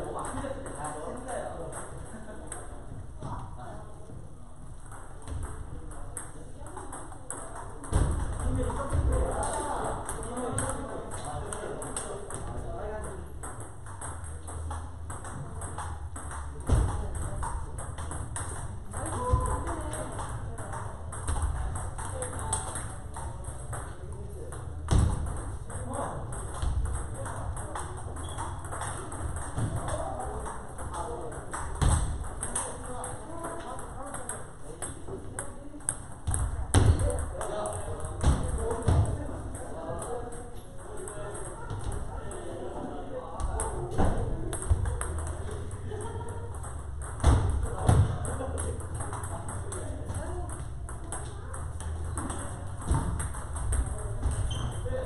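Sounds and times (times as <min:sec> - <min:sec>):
table tennis balls clicking: 0:00.0 - 0:02.7, 0:04.7 - 0:42.8, 0:43.4 - 0:55.0
voices in hall: 0:00.0 - 0:55.0.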